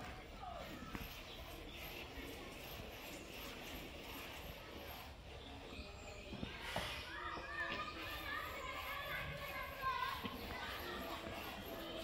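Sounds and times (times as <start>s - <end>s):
distant children's voices: 0.0s - 12.0s.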